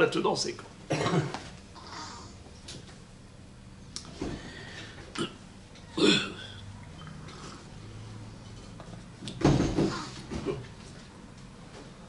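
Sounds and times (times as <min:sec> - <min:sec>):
man clearing his throat: 0:00.9 - 0:01.4, 0:06.0 - 0:06.6.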